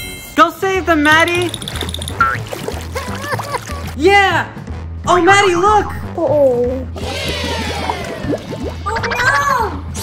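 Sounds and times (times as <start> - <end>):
background music with bass line: 1.3 - 10.0.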